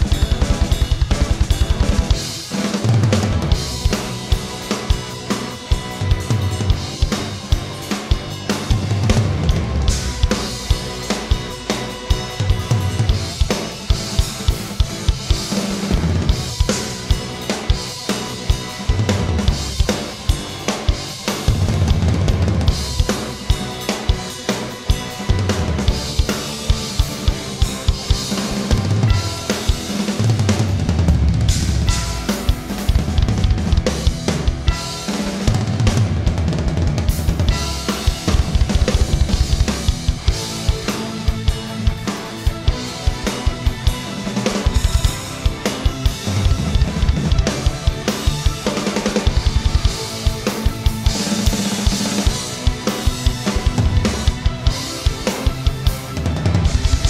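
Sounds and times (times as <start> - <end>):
drum kit playing rock: 0.0 - 57.0.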